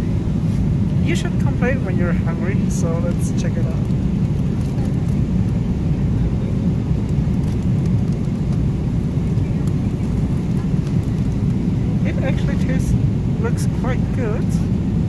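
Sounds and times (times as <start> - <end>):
airliner cabin drone: 0.0 - 15.0.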